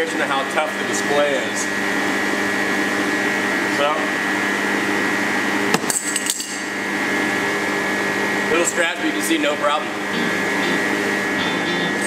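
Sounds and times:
compressor humming: 0.0 - 5.9, 6.5 - 12.0.

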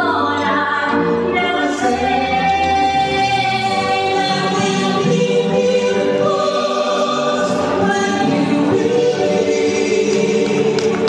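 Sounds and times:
vocal quartet singing in harmony: 0.0 - 11.0.

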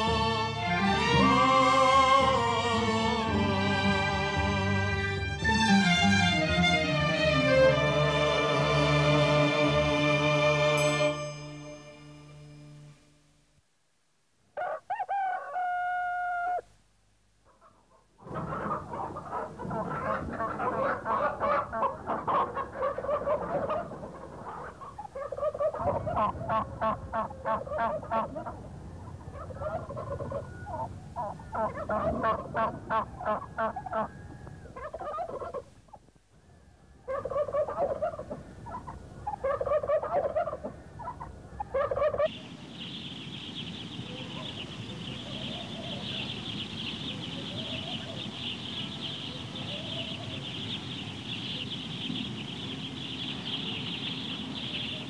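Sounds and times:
chickens clucking: 14.6 - 16.6, 17.5 - 36.2, 37.0 - 55.0
rooster crowing: 14.6 - 16.6, 29.2 - 35.6.

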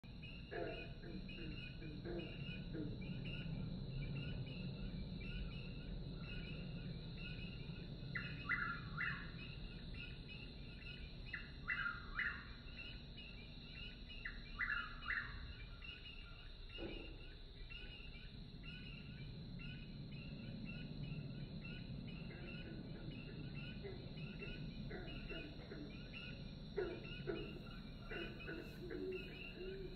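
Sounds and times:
insect drone: 0.0 - 29.9
low room hum: 0.0 - 29.9.

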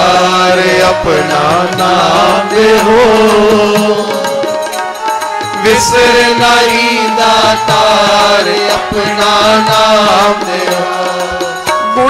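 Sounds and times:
devotional chant with music: 0.0 - 12.0.

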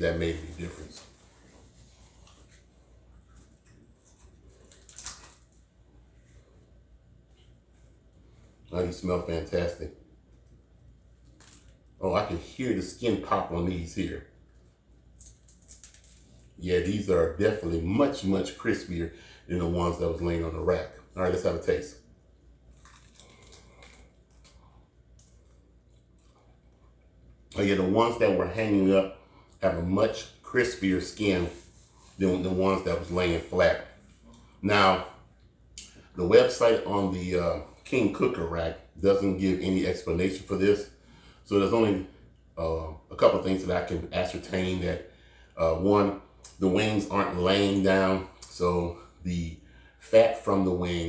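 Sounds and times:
soft crackles: 0.0 - 9.0, 13.8 - 17.4, 19.9 - 34.6
crunching and chewing: 2.1 - 5.7, 22.6 - 27.1.

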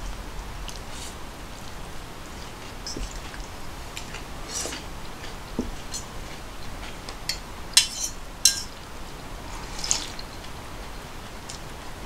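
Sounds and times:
metal tableware clicking on table: 7.3 - 8.8.

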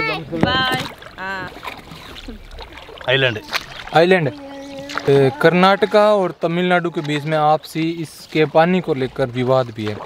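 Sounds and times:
faint water noise: 0.0 - 10.0
person calling: 3.3 - 6.4.

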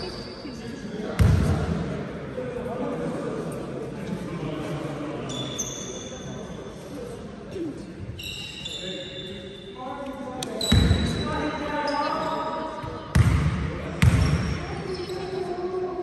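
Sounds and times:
basketball bouncing on hall floor: 1.2 - 1.6, 10.6 - 11.3, 12.8 - 15.2
shoe squeaks on court: 5.3 - 6.8, 8.1 - 9.8, 10.5 - 12.6, 14.1 - 15.5.

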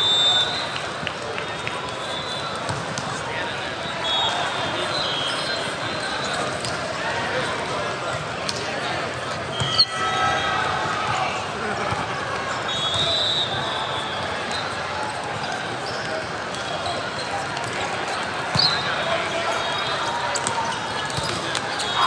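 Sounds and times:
voices chattering: 0.0 - 22.0.

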